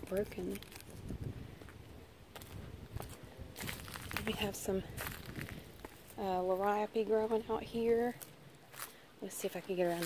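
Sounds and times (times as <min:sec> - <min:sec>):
footsteps through mulch: 0:00.1 - 0:06.7, 0:08.0 - 0:09.0.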